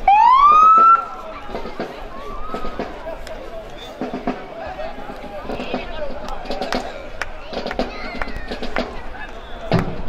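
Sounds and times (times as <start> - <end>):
police siren whoop: 0.1 - 1.0.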